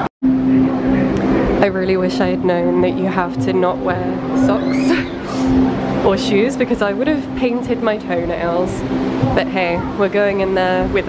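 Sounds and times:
low droning hum: 0.0s - 11.0s
woman speaking: 1.6s - 11.0s.

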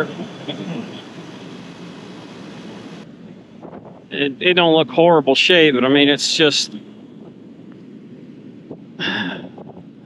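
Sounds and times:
wind on microphone: 0.0s - 4.2s, 7.0s - 10.0s.

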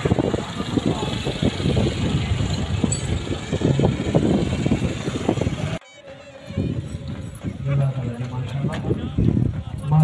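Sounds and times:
tractor engine running: 0.0s - 5.8s.

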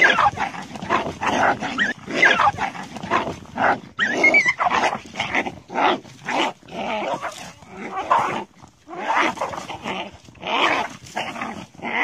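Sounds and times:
animal cries and growls: 0.0s - 12.0s.

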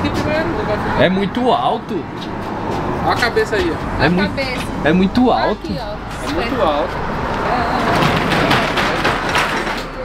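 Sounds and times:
roll-up door rattling: 7.4s - 10.0s.

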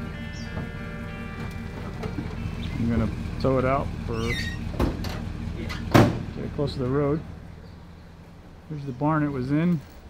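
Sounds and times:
truck engine idling: 0.0s - 10.0s
short squeak: 4.1s - 4.8s
loud metal clank: 4.2s - 6.4s
knocks: 4.7s - 5.2s.

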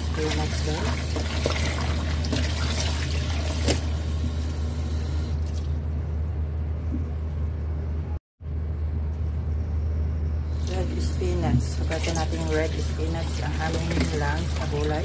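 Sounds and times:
water pouring onto leaves in basin: 0.0s - 3.9s, 10.5s - 15.0s
steady low hum: 0.0s - 15.0s.

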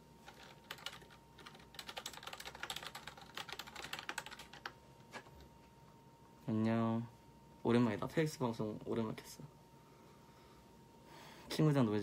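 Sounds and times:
typing on a keyboard: 0.2s - 5.4s.

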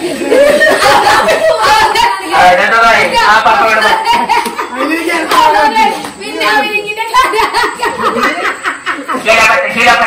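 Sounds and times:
people laughing: 0.0s - 2.3s, 3.6s - 5.5s, 7.0s - 9.9s.

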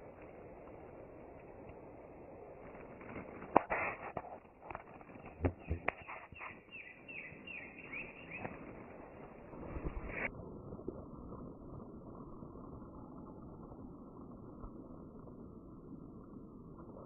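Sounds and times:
sharp cracks: 2.7s - 6.6s
bird chirping: 5.1s - 8.8s.

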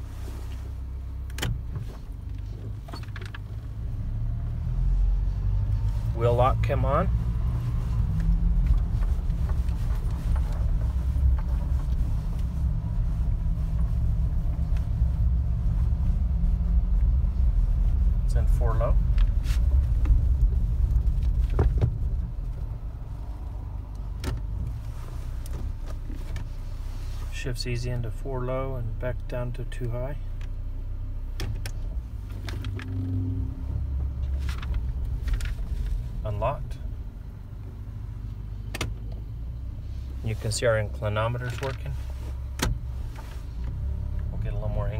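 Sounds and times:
truck engine rumble: 0.0s - 44.9s
light interior clicks and knocks: 1.2s - 3.8s, 18.9s - 22.6s, 23.9s - 26.5s, 31.3s - 33.1s, 38.6s - 39.4s, 41.3s - 44.4s.

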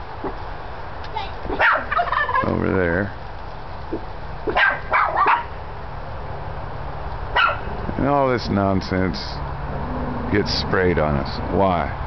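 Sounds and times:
dog barking: 1.5s - 2.1s, 4.5s - 5.6s, 7.3s - 7.7s.

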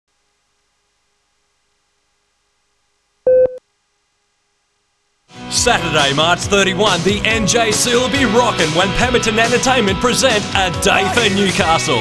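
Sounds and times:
short electronic beep: 3.3s - 3.6s.

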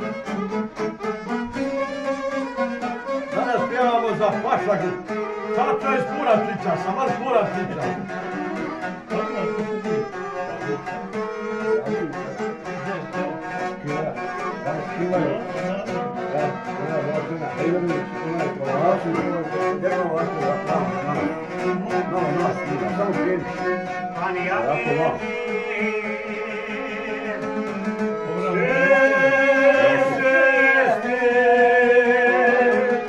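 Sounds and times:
plucked lute: 0.0s - 33.0s
violins playing folk tune: 0.0s - 33.0s.

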